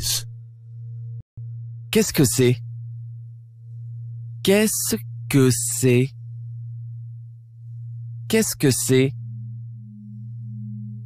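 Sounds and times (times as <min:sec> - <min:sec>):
steady low pure tone: 0:00.0 - 0:11.0.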